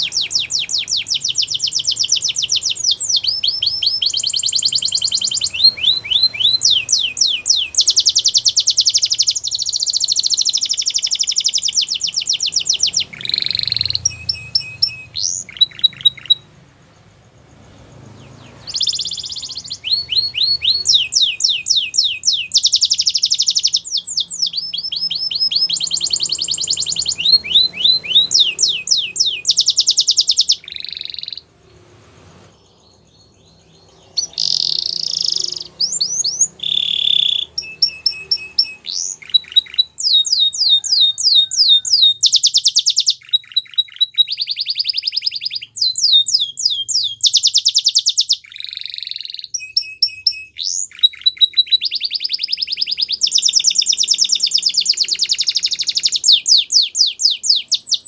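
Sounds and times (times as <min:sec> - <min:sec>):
canary singing trills: 0:00.0 - 0:58.0.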